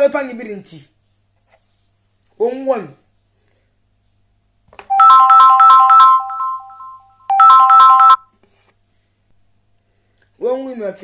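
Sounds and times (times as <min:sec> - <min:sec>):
phone ringtone melody: 0:04.9 - 0:08.2.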